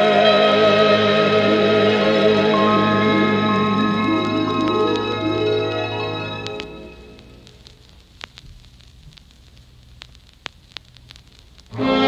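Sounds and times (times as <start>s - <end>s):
loud music with strings: 0.0s - 7.3s, 11.7s - 12.0s
faint vinyl crackle: 0.0s - 12.0s
clicks and pops: 6.4s - 11.8s.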